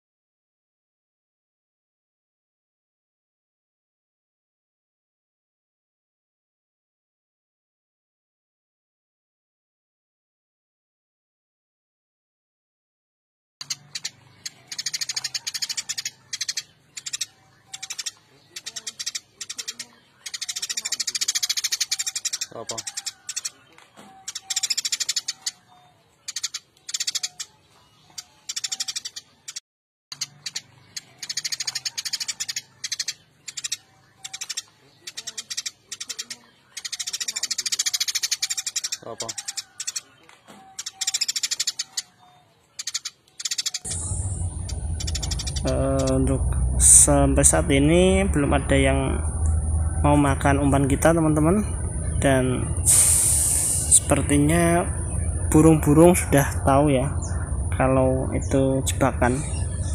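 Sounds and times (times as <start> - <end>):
recorded sparrow chirping: 13.6 - 59.9.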